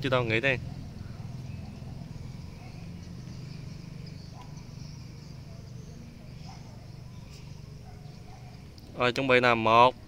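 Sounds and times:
distant traffic rumble: 0.0s - 10.0s
faint high-pitched chirping: 0.5s - 8.8s.

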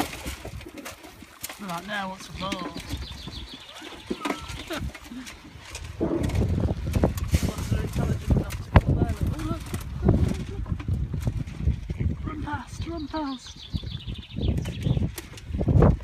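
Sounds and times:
snuffling and trampling: 0.0s - 16.0s.

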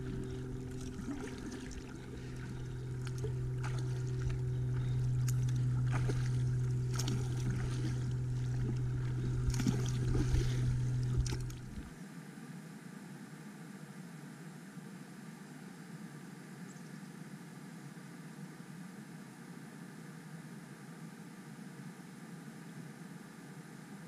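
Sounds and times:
paddle splashing in water: 0.0s - 11.9s
steady low hum: 0.0s - 12.0s.

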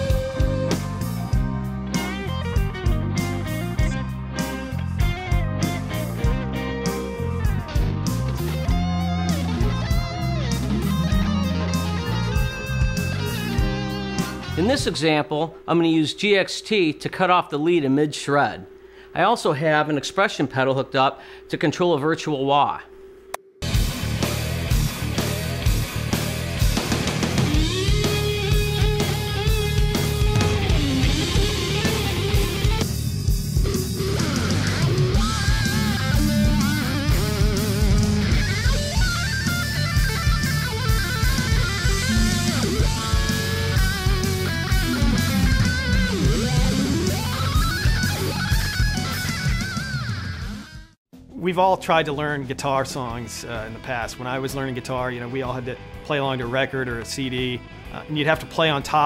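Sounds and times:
electric guitar with wah effect: 0.0s - 15.1s, 23.6s - 51.0s
rock backing track: 0.0s - 15.7s, 23.6s - 51.3s, 52.0s - 59.0s.

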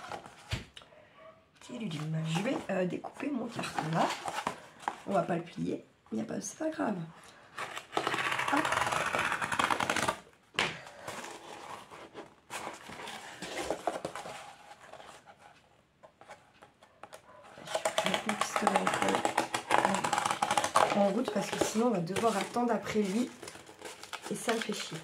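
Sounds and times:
knife cutting cardboard: 7.6s - 10.3s, 17.5s - 25.0s.

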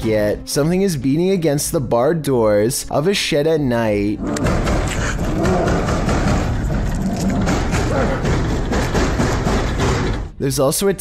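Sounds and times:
growling voice: 4.2s - 6.1s
banging and rattling on doors: 4.2s - 10.4s.

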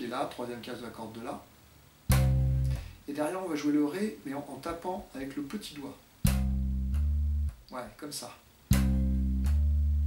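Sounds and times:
slap bass note: 2.1s - 3.0s, 6.2s - 7.6s, 8.7s - 10.0s.

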